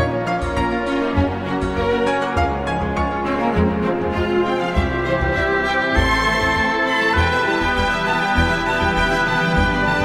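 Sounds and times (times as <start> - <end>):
background music chords and bass: 0.0 - 10.0.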